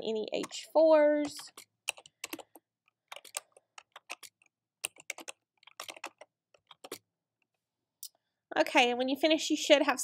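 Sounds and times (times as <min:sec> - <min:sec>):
computer keyboard typing: 0:00.3 - 0:07.1.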